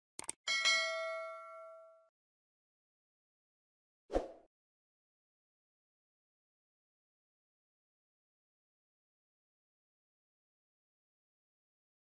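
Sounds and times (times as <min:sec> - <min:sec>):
bright bell chime: 0:00.5 - 0:02.1.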